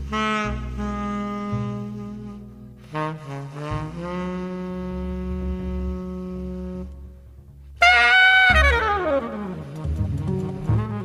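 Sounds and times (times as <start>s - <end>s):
jazz horn and bass: 0.0s - 11.0s.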